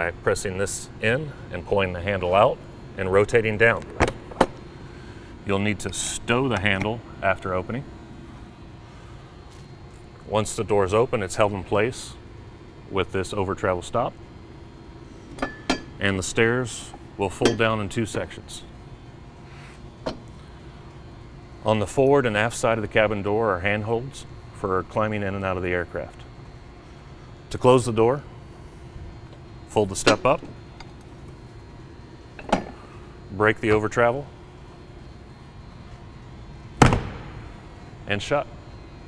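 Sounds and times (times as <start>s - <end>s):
low steady hum: 0.0s - 39.0s
aircraft door slamming shut: 36.8s - 37.5s.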